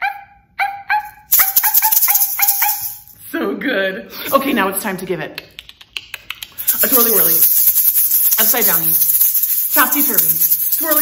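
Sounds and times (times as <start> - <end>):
woman yipping: 0.0 - 3.0
hand shaker rattling: 1.2 - 3.2, 5.6 - 11.0.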